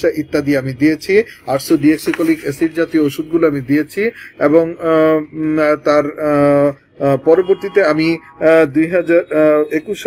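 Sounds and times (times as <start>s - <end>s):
man speaking with drawn-out syllables: 0.0s - 10.0s.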